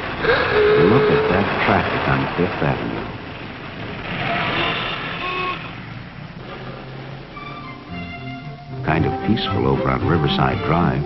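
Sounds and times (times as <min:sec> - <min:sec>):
street traffic: 0:00.0 - 0:11.0
car horn toots: 0:04.2 - 0:05.8.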